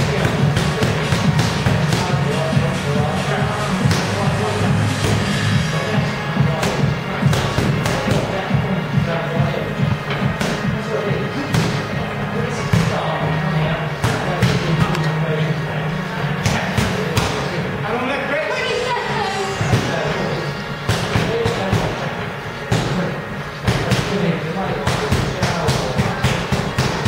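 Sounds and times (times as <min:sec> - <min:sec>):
background music: 0:00.0 - 0:27.0.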